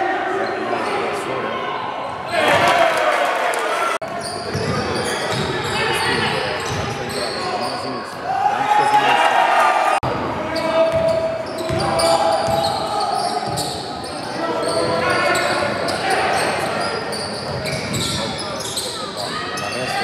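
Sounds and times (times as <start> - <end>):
sneakers squeaking: 4.0 - 7.9, 10.2 - 20.0.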